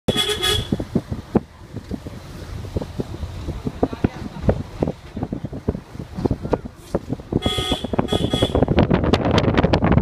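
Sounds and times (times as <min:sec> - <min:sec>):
vehicle horn toot: 0:00.1 - 0:00.8, 0:07.4 - 0:08.8
wind and motion rumble: 0:00.1 - 0:10.0.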